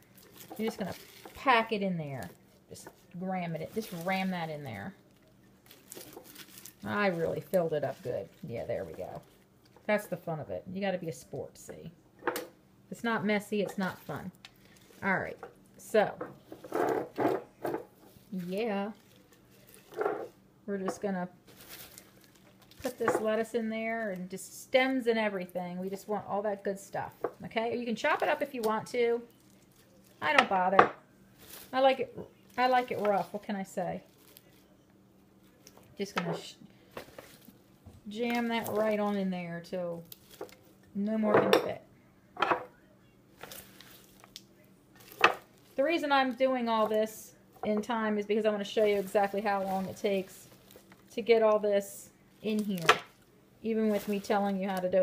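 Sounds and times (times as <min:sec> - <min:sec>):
plastic container rustling: 0:00.0 - 0:09.4, 0:20.9 - 0:24.2, 0:31.4 - 0:34.6, 0:36.9 - 0:39.2, 0:40.0 - 0:40.7, 0:43.4 - 0:44.4, 0:45.0 - 0:47.8, 0:48.4 - 0:51.5, 0:52.4 - 0:55.0
salad leaves rustling: 0:00.0 - 0:10.3, 0:13.6 - 0:15.5, 0:18.0 - 0:20.2, 0:20.8 - 0:34.8, 0:36.8 - 0:40.8, 0:43.3 - 0:55.0.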